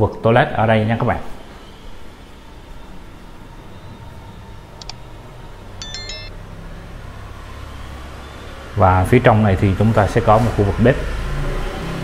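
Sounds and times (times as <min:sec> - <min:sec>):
short high-pitched beeps: 0:05.8 - 0:06.3
distant street traffic rumble: 0:06.4 - 0:12.0.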